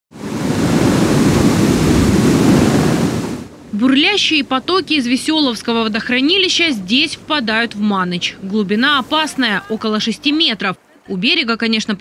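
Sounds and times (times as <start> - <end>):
water rushing over a weir: 0.1 - 12.0
person speaking: 3.7 - 12.0.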